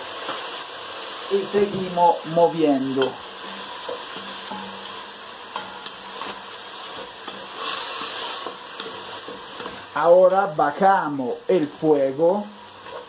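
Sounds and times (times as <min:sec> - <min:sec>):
food sizzling in a pot: 0:00.0 - 0:13.0
wooden spatula scraping pot: 0:05.6 - 0:09.9.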